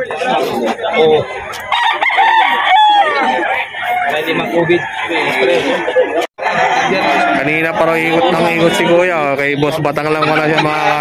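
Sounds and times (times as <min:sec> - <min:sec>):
men talking: 0:00.0 - 0:01.7, 0:02.4 - 0:11.0
rooster crowing: 0:01.7 - 0:05.8.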